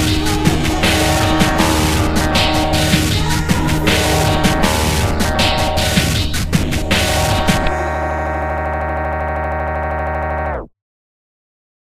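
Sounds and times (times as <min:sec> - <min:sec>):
sustained synthesizer chord: 0:00.0 - 0:10.7.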